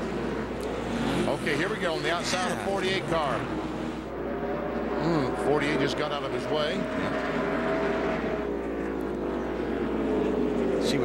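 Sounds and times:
race car engine at full throttle: 0:00.0 - 0:11.0.

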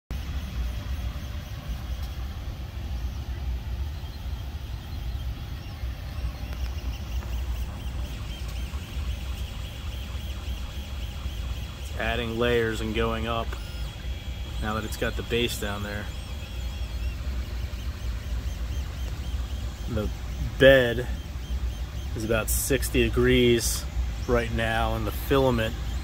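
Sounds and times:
printer fans and motors humming: 0:00.1 - 0:26.0
stepper motor whining tones: 0:00.1 - 0:26.0.

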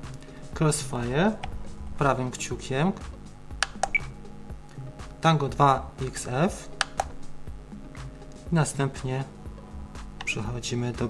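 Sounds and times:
faint background music: 0:00.0 - 0:11.0
controller button clicks: 0:03.6 - 0:04.2, 0:06.8 - 0:07.2.

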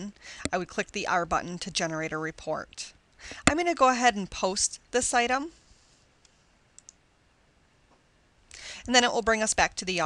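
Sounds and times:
computer mouse clicks: 0:06.2 - 0:07.0.

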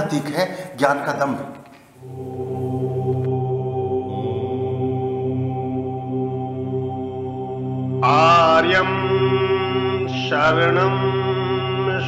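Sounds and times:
chanted vocal drone: 0:02.0 - 0:12.0.

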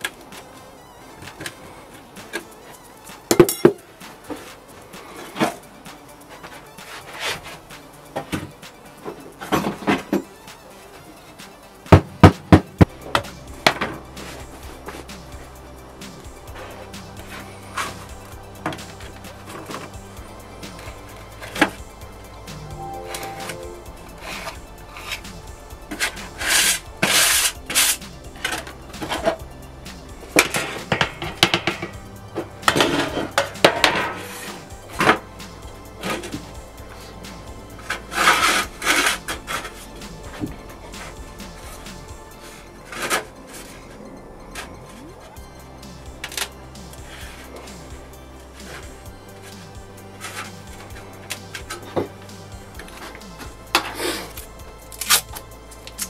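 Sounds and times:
background music low notes: 0:00.0 - 0:56.0.

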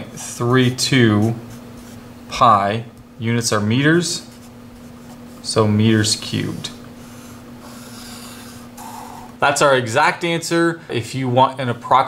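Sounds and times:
faint steady hum: 0:00.0 - 0:12.0
marker pen scratching on paper: 0:00.1 - 0:02.0, 0:07.0 - 0:08.6.

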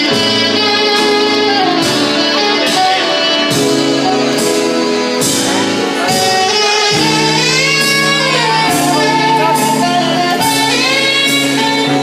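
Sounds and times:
electric guitar: 0:00.0 - 0:12.0
polka band playing: 0:00.0 - 0:12.0.

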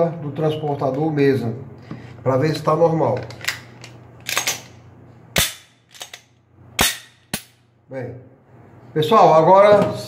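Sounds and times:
pistol mechanism clicking: 0:05.4 - 0:07.6.

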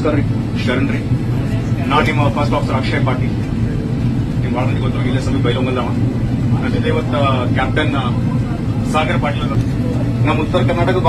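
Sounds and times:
aircraft cabin hum: 0:00.0 - 0:11.0
man speaking over cabin pa: 0:04.4 - 0:11.0.

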